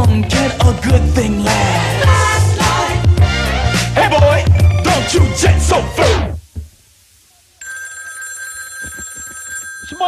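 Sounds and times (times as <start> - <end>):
steady high ringing tone: 7.6 - 10.0.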